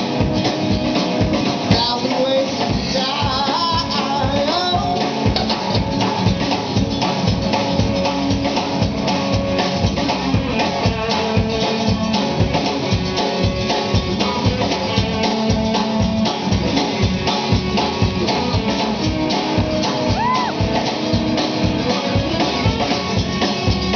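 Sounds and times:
country-rock band playing: 0.0 - 23.9
drum kit beat: 0.0 - 23.9.

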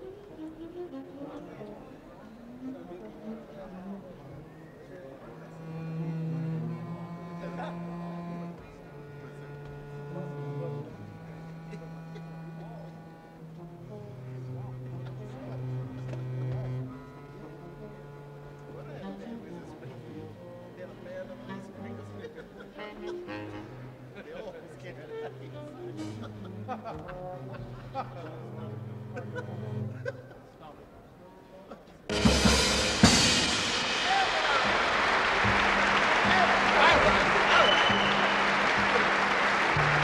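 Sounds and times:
big band sustained chords: 32.1 - 40.0.

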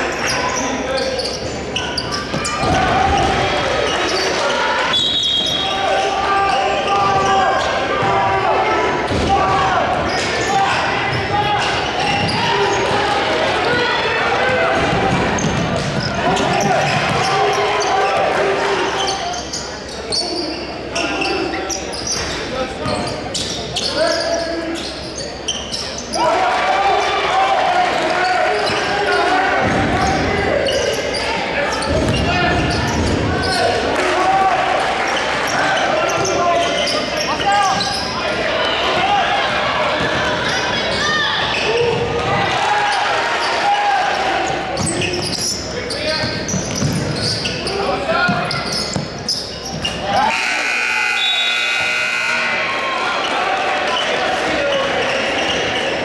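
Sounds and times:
people shouting and talking: 0.0 - 56.0
horn-like tone: 50.2 - 52.6.

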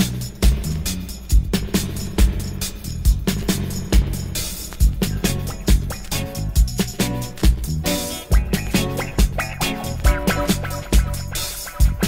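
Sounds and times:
deep bass line: 0.0 - 12.0
heavy drum beat: 0.0 - 12.0.

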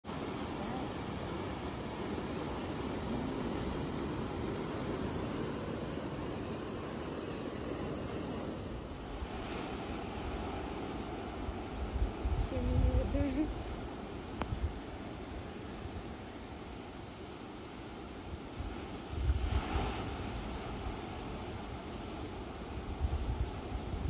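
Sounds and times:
high-pitched insect chorus: 0.0 - 24.0
wind: 0.0 - 24.0
surf rushing: 3.0 - 12.4, 18.8 - 21.8.

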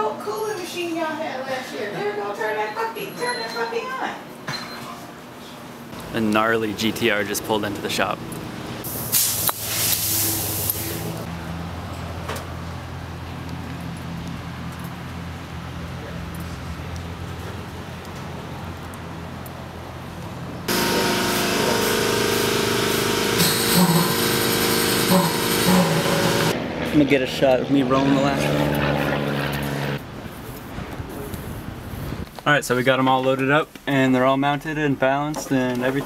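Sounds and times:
hiss: 8.8 - 11.2
shop machinery whirring: 20.7 - 26.6.

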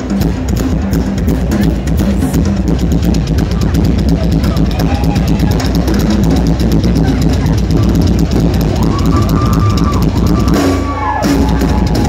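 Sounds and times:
fast drum beat: 0.0 - 12.0
live rock band playing: 0.0 - 12.0.

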